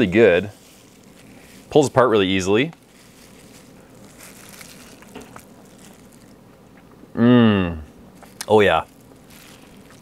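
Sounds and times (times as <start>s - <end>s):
soft gloved hand handling: 0.0s - 6.4s.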